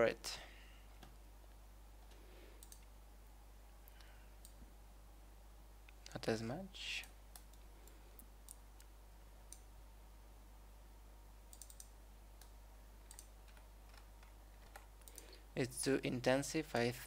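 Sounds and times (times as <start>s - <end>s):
steady low hum: 0.0s - 17.0s
computer mouse clicks: 2.0s - 2.9s, 7.0s - 8.9s, 11.5s - 15.4s.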